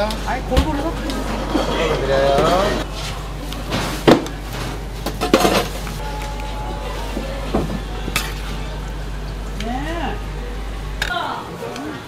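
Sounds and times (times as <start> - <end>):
utensils clattering against dishes: 3.7 - 6.0, 7.7 - 8.6.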